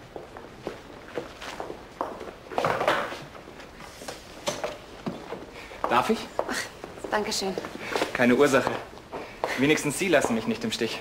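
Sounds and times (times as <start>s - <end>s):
light footsteps: 0.0s - 11.0s.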